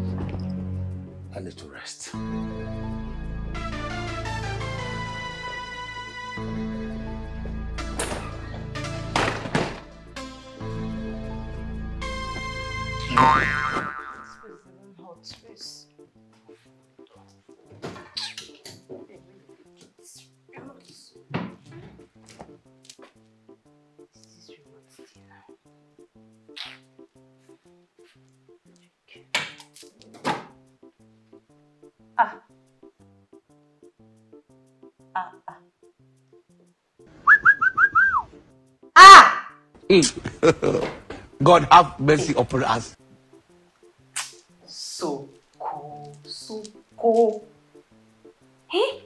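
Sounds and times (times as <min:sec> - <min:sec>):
soft background music: 0:00.0 - 0:49.0
short whistled notes: 0:37.2 - 0:38.4.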